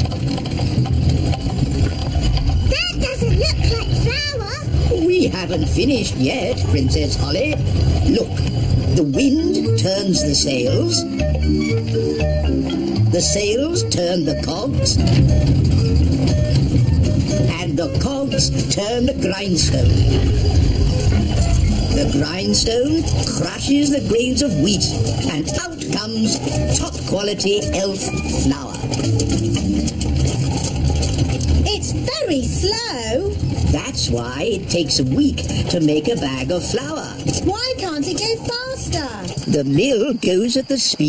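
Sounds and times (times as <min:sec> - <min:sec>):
millstone grinding: 0:00.0 - 0:09.9
windmill machinery rumbling: 0:00.0 - 0:41.0.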